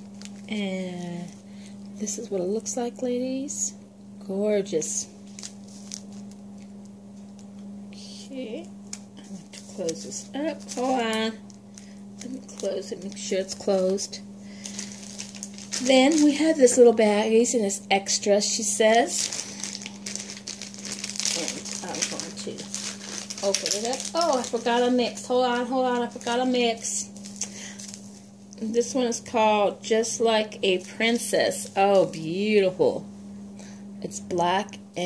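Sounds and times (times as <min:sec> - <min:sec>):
plastic bags rustling and clicking: 0:00.0 - 0:02.0, 0:05.2 - 0:07.7, 0:08.9 - 0:17.0, 0:18.8 - 0:28.6
steady low hum: 0:00.0 - 0:35.0.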